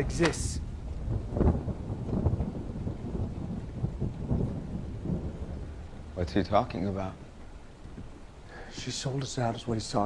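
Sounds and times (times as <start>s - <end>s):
low uneven rumble: 0.0s - 10.0s.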